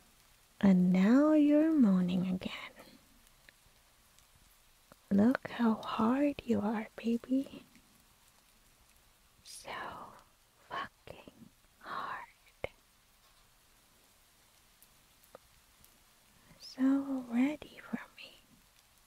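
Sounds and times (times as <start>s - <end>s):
woman whispering and exhaling: 9.5s - 12.8s.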